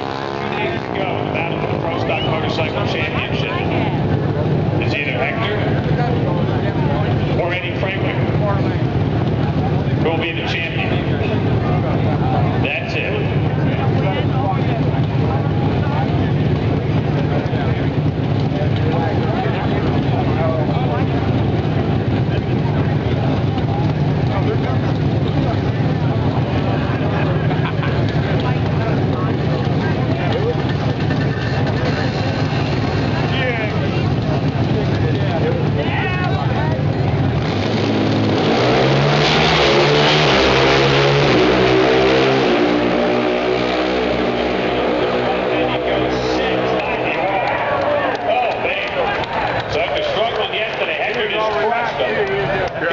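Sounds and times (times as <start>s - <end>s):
drag racing engine: 0.0s - 52.9s.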